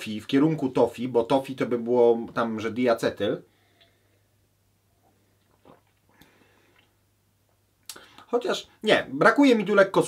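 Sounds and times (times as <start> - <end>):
low steady hum: 0.0 - 9.9
sipping and swallowing: 5.4 - 7.0.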